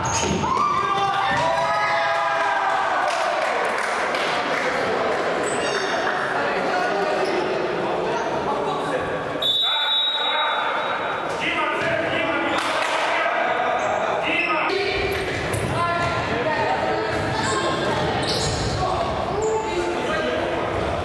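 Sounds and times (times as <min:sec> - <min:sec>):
players calling and talking: 0:00.0 - 0:21.0
referee's whistle: 0:09.4 - 0:11.1.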